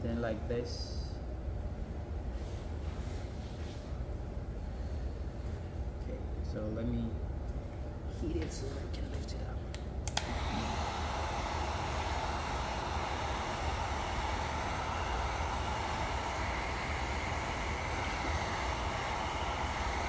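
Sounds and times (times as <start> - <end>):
heat gun fan blowing: 2.1 - 20.0
heat gun switch click: 10.0 - 10.5.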